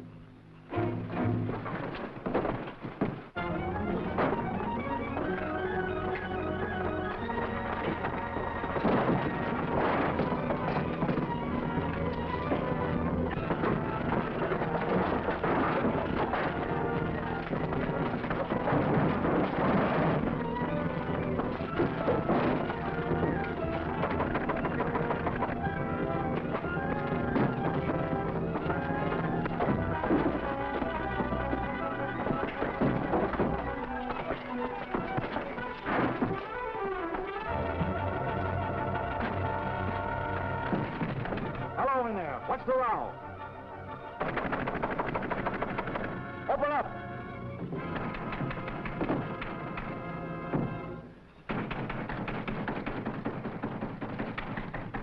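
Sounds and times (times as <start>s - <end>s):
dramatic orchestral music: 0.0s - 2.0s, 3.4s - 51.1s
thumps and crashes of fighting: 0.8s - 42.5s, 44.1s - 46.7s, 47.6s - 55.0s.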